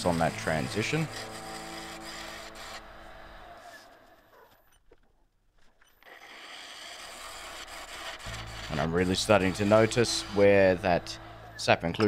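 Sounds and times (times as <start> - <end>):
lathe tool scraping wood: 0.0 - 4.3, 5.8 - 12.0
wood lathe humming: 0.0 - 4.3, 6.0 - 12.0.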